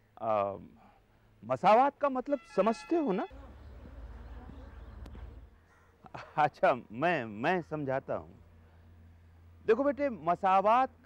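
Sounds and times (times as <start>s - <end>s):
faint low hum: 3.3s - 11.0s.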